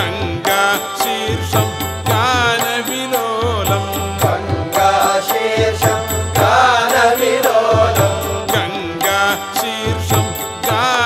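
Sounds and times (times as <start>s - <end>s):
steady held drone: 0.0s - 10.8s
person singing devotional melody: 0.0s - 11.0s
repeating percussion strokes: 0.0s - 11.0s.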